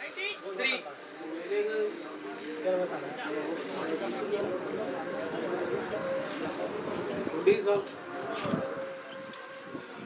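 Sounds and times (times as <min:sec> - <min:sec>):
people talking indistinctly: 0:00.0 - 0:10.0.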